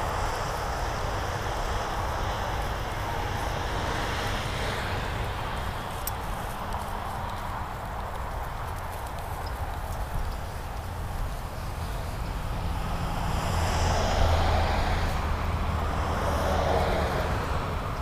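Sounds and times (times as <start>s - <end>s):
road traffic passing: 0.0s - 18.0s.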